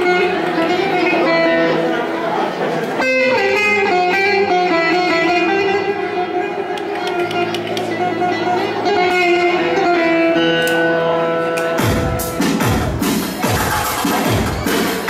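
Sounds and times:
folk melody instrument sliding notes: 0:00.0 - 0:15.0.

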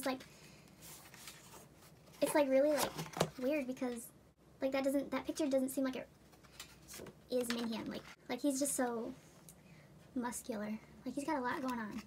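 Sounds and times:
paper and cardboard rustling: 0:00.8 - 0:03.6.

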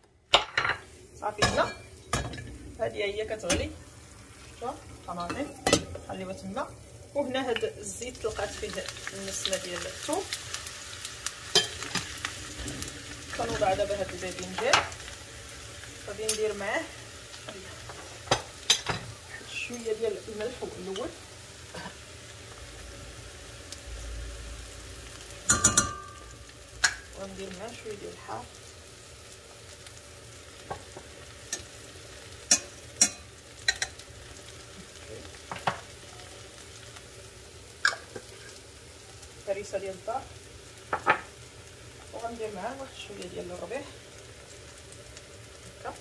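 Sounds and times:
eggplant sizzling in oil: 0:00.0 - 0:46.0.

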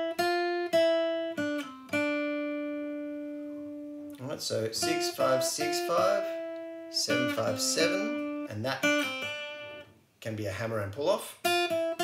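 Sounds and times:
acoustic guitar blues lick: 0:00.0 - 0:10.0, 0:10.6 - 0:12.0.

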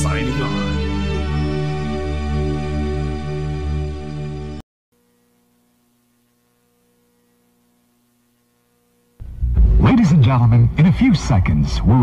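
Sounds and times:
faint steady hum: 0:05.0 - 0:12.0.

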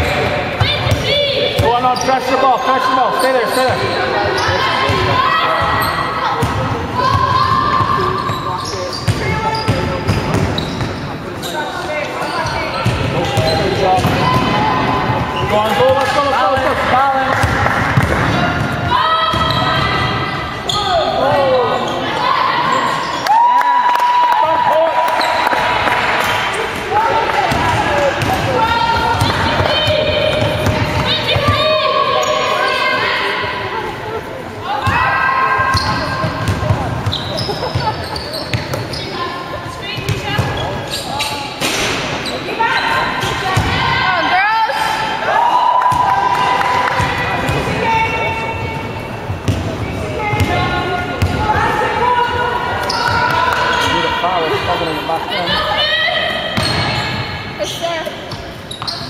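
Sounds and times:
players' voices: 0:00.0 - 0:59.0
shoes squeaking on floor: 0:01.6 - 0:06.1, 0:07.0 - 0:14.4, 0:35.6 - 0:43.5, 0:52.2 - 0:55.0, 0:56.5 - 0:59.0
basketball bouncing on wooden court: 0:06.4 - 0:08.0, 0:27.3 - 0:31.6, 0:35.7 - 0:39.0, 0:49.3 - 0:51.4, 0:56.6 - 0:57.0.

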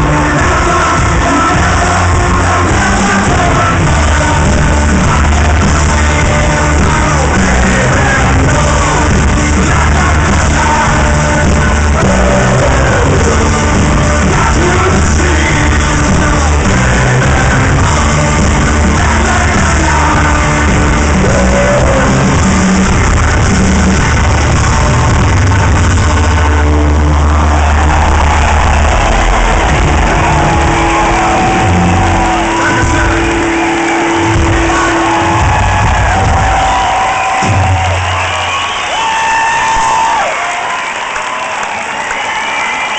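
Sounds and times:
live rock band playing: 0:00.0 - 0:41.1
crowd cheering: 0:00.0 - 0:42.9.

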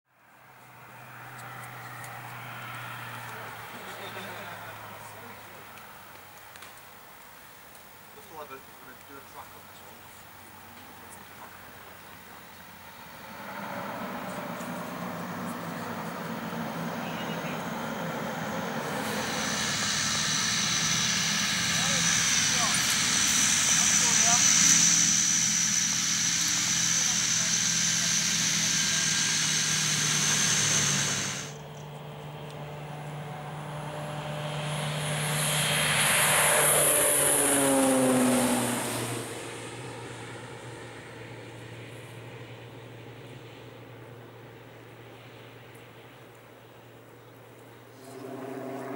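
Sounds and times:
aircraft flying past: 0:00.2 - 0:06.1, 0:08.2 - 0:47.0, 0:47.6 - 0:48.9
high turbine whine: 0:00.2 - 0:42.0, 0:46.9 - 0:48.9
turboprop engine running: 0:08.0 - 0:46.0, 0:47.6 - 0:48.9.

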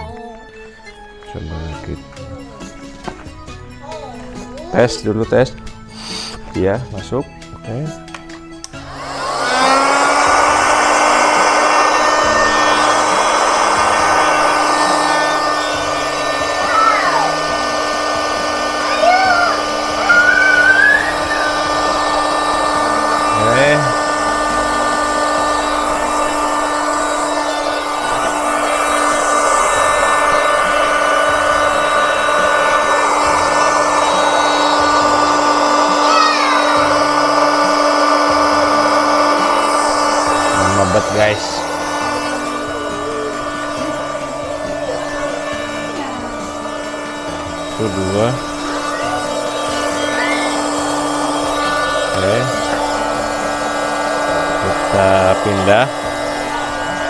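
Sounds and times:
electric air pump running: 0:00.0 - 0:57.0.

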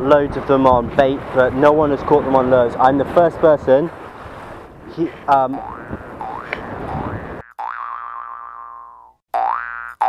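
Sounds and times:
water noise: 0:00.0 - 0:10.0
wind: 0:00.0 - 0:10.0
cartoon boing sound effect: 0:05.6 - 0:10.0.

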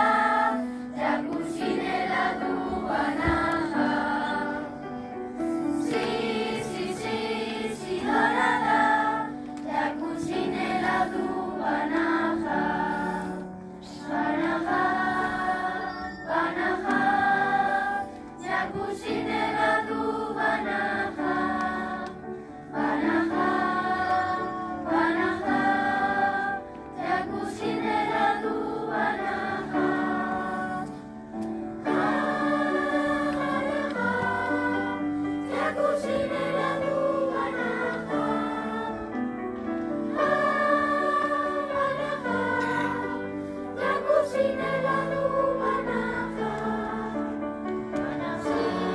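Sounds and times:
children's choir singing: 0:00.0 - 0:48.9.

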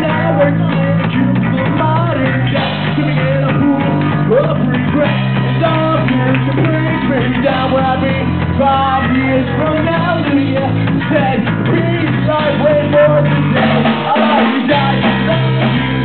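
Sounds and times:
guitar: 0:00.0 - 0:16.0
person singing: 0:00.0 - 0:16.0.

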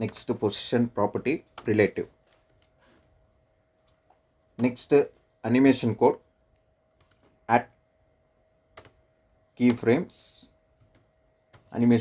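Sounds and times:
person speaking: 0:00.0 - 0:02.2, 0:04.5 - 0:06.3, 0:07.3 - 0:07.8, 0:09.5 - 0:10.6, 0:11.6 - 0:12.0
keyboard keystrokes: 0:07.0 - 0:07.4.

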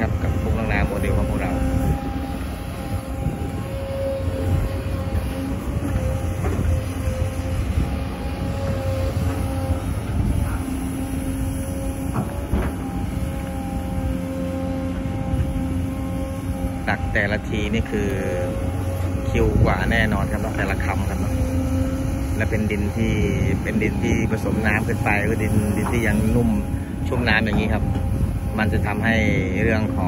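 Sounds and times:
excavator diesel engine running: 0:00.0 - 0:30.0.

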